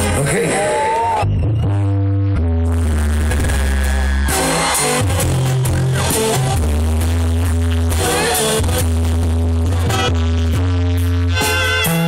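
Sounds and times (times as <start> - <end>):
heavy low bass line: 0.0 - 12.0
brass band playing: 2.6 - 12.0.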